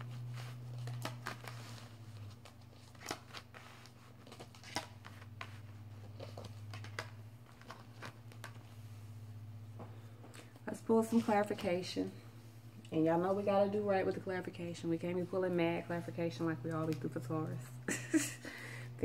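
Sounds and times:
cards being shuffled: 0.0s - 8.9s
low steady hum: 0.0s - 19.0s.

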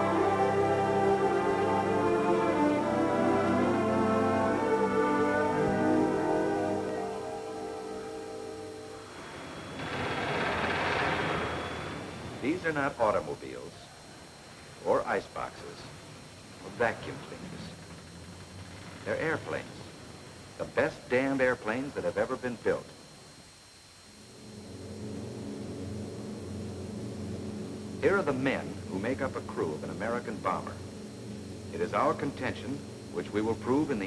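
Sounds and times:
rushing mechanical roar: 0.0s - 13.0s, 16.7s - 20.3s, 24.2s - 34.0s
propeller engines droning: 0.0s - 34.0s.

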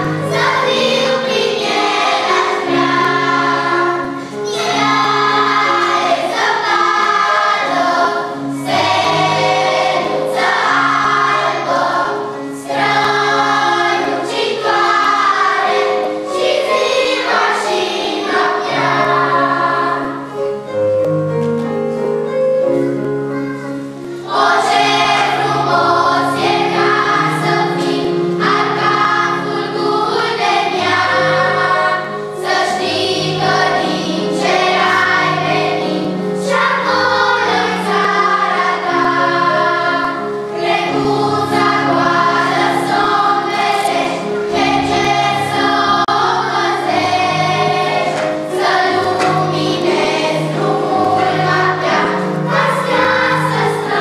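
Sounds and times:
children's choir singing: 0.0s - 21.0s, 22.6s - 54.0s.

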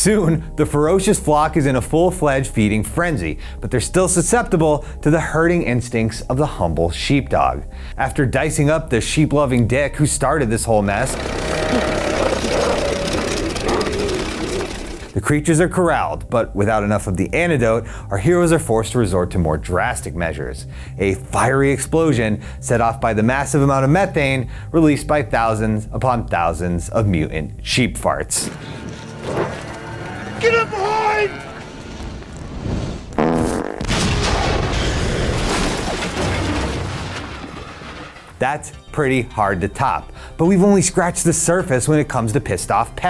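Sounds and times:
fart blast: 11.0s - 15.1s, 31.5s - 35.2s
propeller plane engine: 11.0s - 15.2s
explosion: 31.9s - 38.2s.

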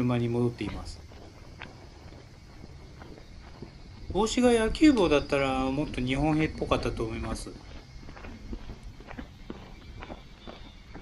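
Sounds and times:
footsteps on asphalt: 0.0s - 11.0s.

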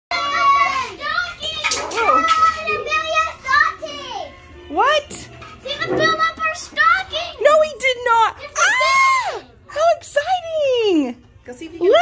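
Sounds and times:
children calling out and shrieking: 0.1s - 4.6s, 8.3s - 9.6s.

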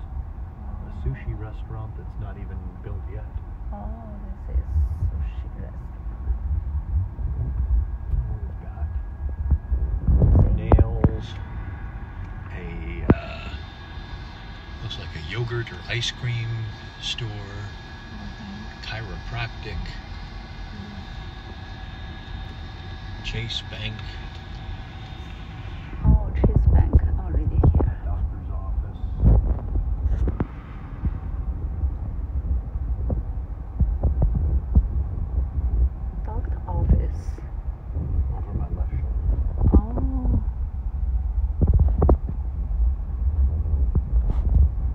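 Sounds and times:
car engine and road rumble: 0.0s - 44.9s.

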